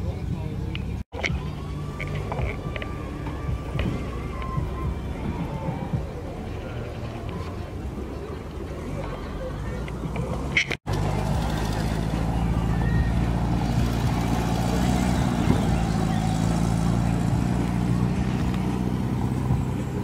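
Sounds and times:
voices in background: 0.0s - 18.6s
vehicle engine idling: 0.0s - 20.0s.

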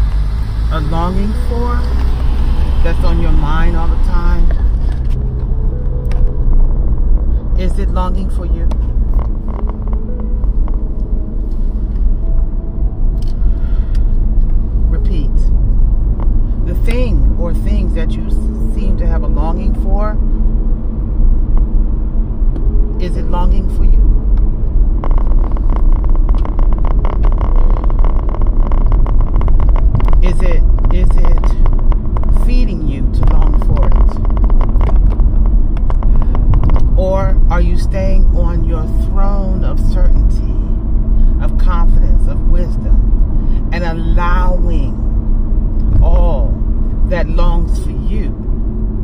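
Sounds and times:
car engine and road noise: 0.0s - 49.0s.

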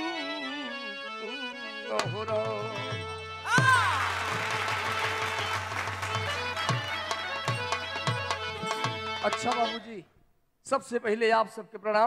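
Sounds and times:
harmonium holding a note: 0.0s - 9.9s
quick dholak beat: 2.0s - 9.8s
audience clapping: 3.6s - 9.0s.

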